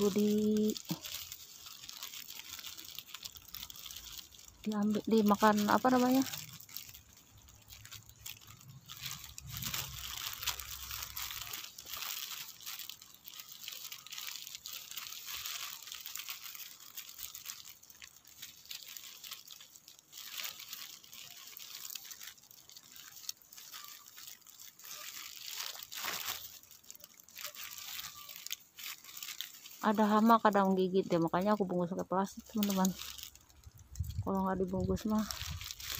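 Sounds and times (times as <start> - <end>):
leaves rustling: 0.0 - 35.9
plastic wrapping crinkling: 0.0 - 35.9.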